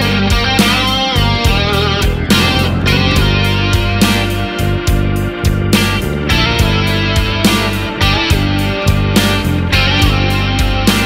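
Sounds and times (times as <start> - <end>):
blues-rock band playing: 0.0 - 11.0
cymbal hits: 2.1 - 4.2.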